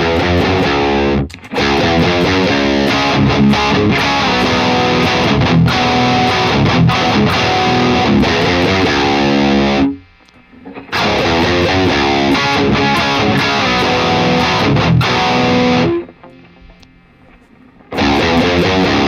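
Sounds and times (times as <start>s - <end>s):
distorted electric guitar riffing: 0.0s - 19.0s.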